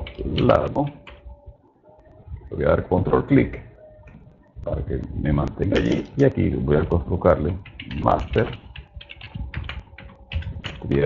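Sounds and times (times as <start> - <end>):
computer keyboard typing: 0.0 - 1.3, 7.4 - 11.0.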